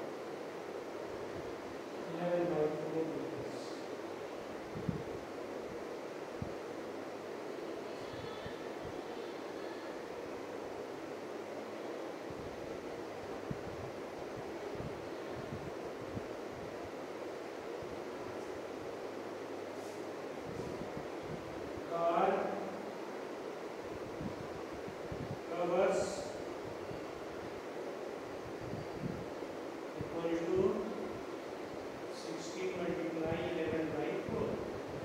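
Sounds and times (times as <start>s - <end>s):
steady background hiss: 0.0s - 35.0s.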